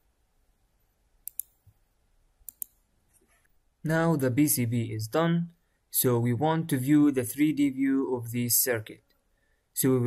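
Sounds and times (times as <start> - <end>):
computer mouse clicks: 1.2 - 1.8, 2.4 - 2.8.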